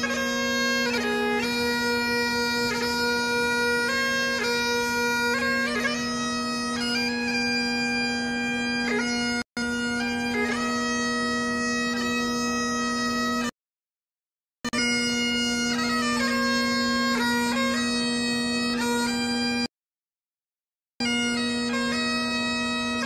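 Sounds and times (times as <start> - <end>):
bagpipe chanter melody: 0.0 - 13.5, 14.7 - 19.7, 21.0 - 23.0
bagpipe drone: 0.0 - 13.5, 14.7 - 19.7, 21.0 - 23.0.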